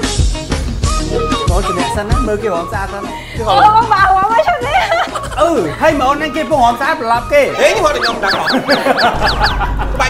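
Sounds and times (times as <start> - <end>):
squeaky falling chirps: 0.9 - 3.2, 7.3 - 9.6.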